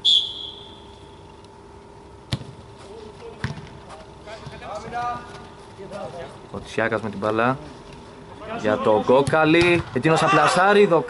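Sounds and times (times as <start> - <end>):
referee's whistle: 0.0 - 1.1
football being kicked: 2.3 - 2.6.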